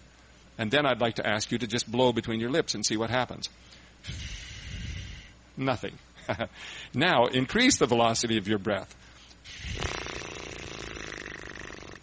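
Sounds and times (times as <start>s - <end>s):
lip trill buzzing: 4.0s - 5.4s, 9.4s - 12.0s.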